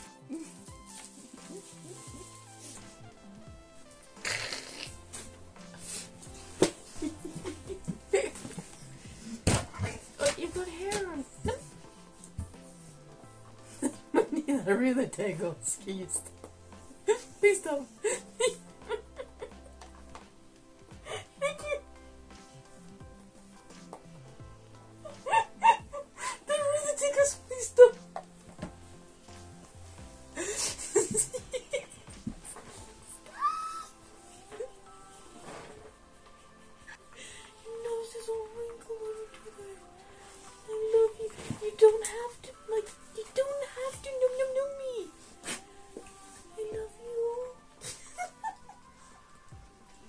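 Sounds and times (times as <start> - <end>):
soft background music: 0.0 - 50.0.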